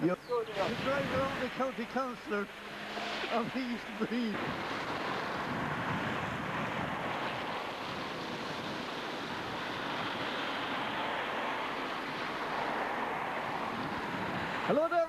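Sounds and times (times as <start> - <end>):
wind on microphone: 0.3 - 14.7.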